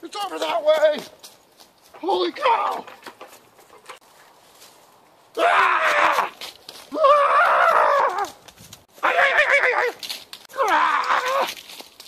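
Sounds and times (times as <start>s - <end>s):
man screaming: 5.4s - 8.3s, 9.0s - 11.5s.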